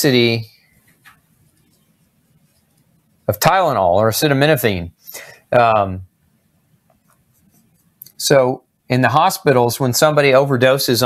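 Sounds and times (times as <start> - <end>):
marker writing on whiteboard: 6.9 - 8.0.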